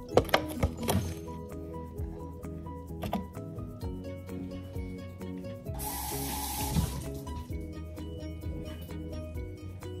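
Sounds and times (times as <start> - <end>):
background music: 0.0 - 10.0
water running from tap: 5.8 - 7.3.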